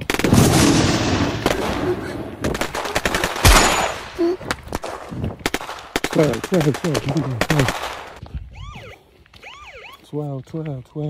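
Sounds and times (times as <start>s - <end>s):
rapid gunfire bursts: 2.4s - 4.0s, 4.8s - 8.2s.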